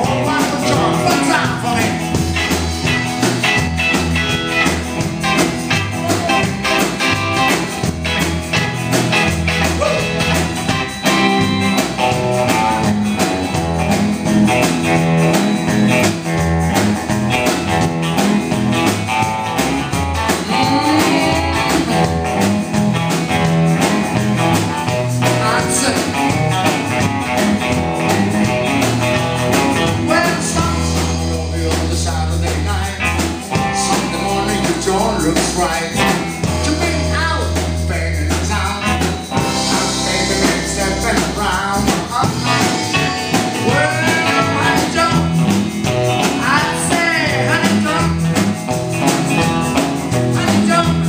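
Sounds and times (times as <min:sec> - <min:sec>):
electric guitar: 0:00.0 - 0:51.0
rock and roll band playing: 0:00.0 - 0:51.0.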